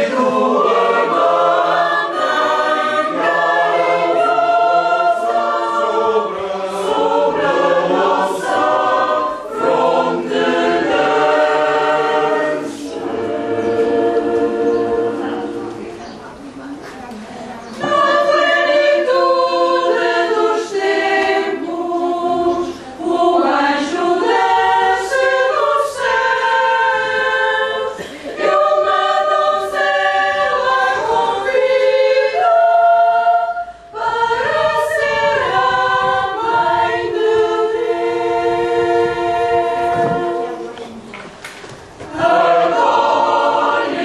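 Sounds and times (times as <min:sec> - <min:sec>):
choir singing: 0:00.0 - 0:16.2, 0:17.6 - 0:41.1, 0:41.9 - 0:44.0.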